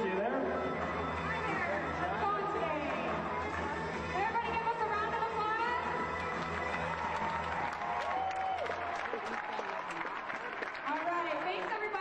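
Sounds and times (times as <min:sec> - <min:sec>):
music: 0:00.0 - 0:12.0
crowd applauding: 0:05.8 - 0:12.0.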